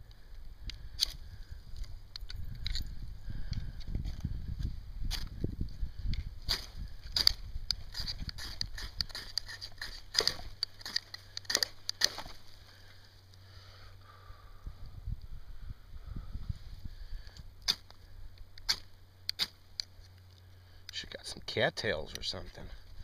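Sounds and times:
knife scraping fire-starter bar: 6.5 - 12.4.

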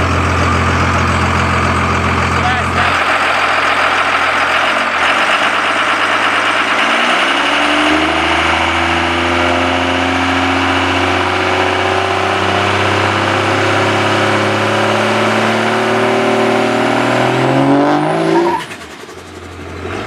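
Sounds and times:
diesel engine revving: 0.0 - 20.0.

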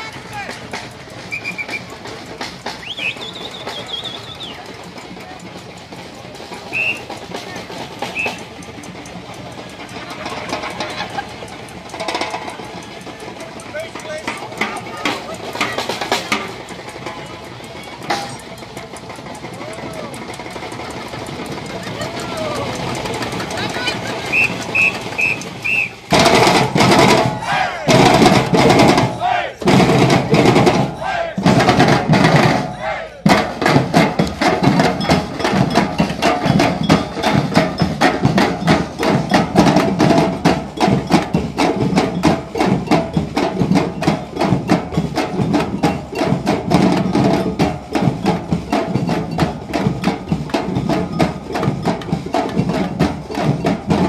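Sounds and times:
crowd murmur: 0.0 - 54.0
high whistled tone: 1.3 - 2.0, 2.7 - 4.7, 6.7 - 7.1, 8.1 - 8.5, 24.3 - 26.1
group of voices shouting: 27.2 - 29.7, 30.3 - 31.5, 32.6 - 33.4.

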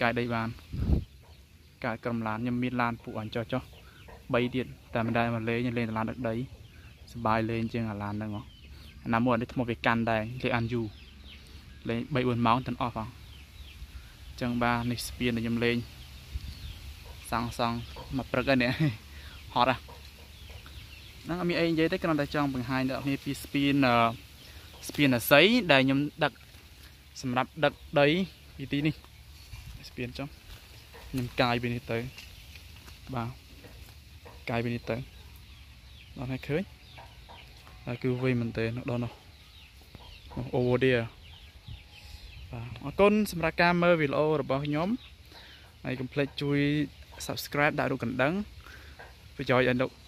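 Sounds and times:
person speaking: 24.8 - 32.2.

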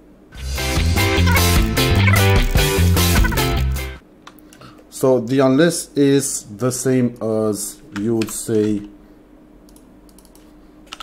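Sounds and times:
low room hum: 0.0 - 0.4, 2.8 - 11.0.

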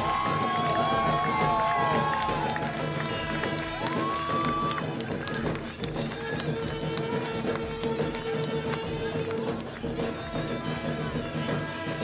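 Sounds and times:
drum strikes: 0.0 - 12.0.

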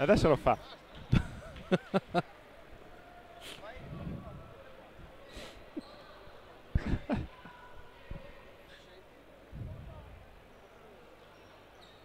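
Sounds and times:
faint voices: 2.1 - 11.8.

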